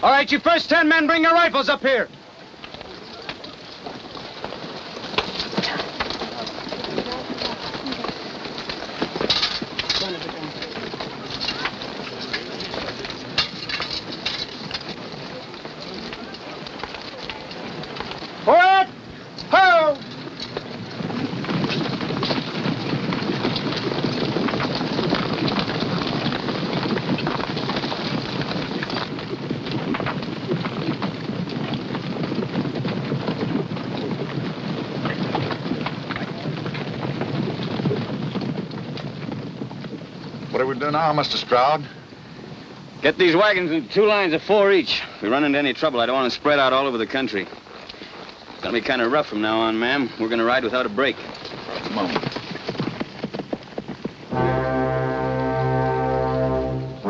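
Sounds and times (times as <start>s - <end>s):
horses galloping on dry ground: 0.0s - 57.0s.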